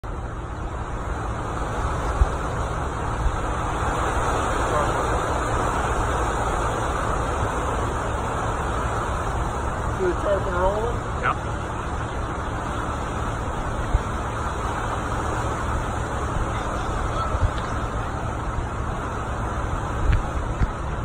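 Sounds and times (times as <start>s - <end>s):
road traffic rumble and hiss: 0.0s - 21.0s.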